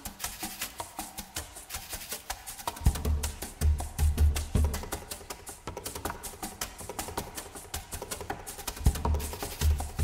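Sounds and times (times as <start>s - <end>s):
percussive dance music clicks: 0.0s - 10.0s.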